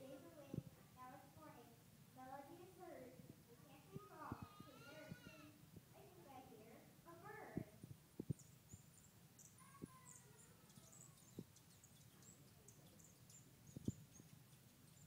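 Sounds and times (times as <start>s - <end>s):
children's voices murmuring: 0.0s - 7.8s, 9.5s - 13.1s.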